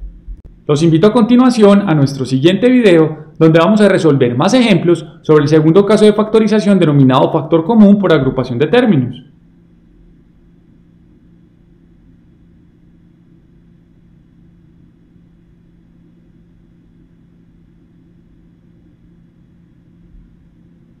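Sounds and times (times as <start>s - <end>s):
low hum with faint hiss: 0.0s - 21.0s.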